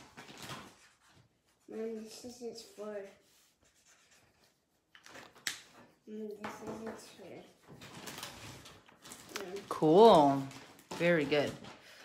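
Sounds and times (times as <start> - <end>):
drawing supplies rustling: 0.0 - 12.0.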